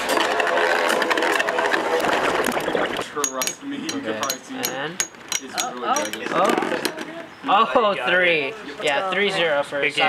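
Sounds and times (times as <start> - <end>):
spinning tops clashing: 3.2 - 6.2.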